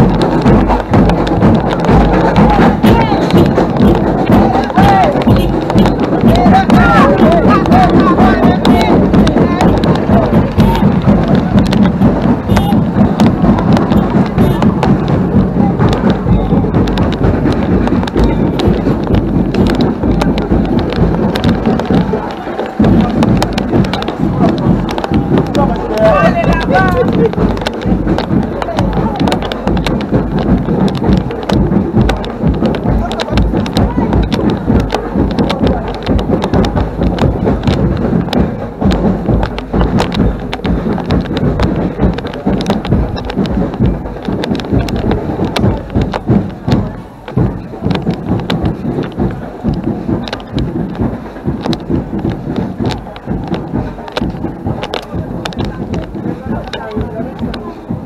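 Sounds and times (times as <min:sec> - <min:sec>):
loud distorted carnival music: 0:00.0 - 0:58.0.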